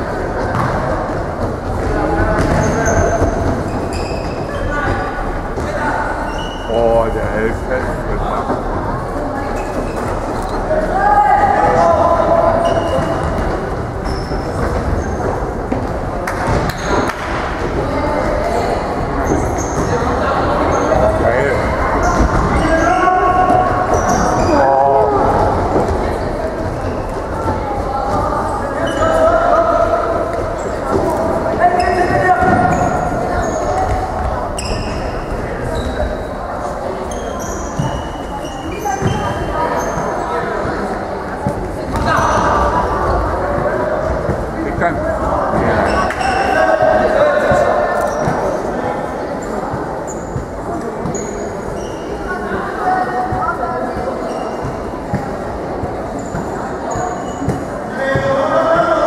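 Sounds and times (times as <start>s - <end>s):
football kicked and bouncing: 0.5s - 0.8s.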